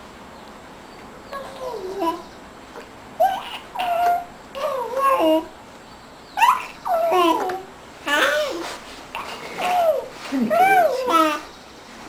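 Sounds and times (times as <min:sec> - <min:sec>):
baby cooing and babbling: 0:01.3 - 0:05.5, 0:06.4 - 0:11.5.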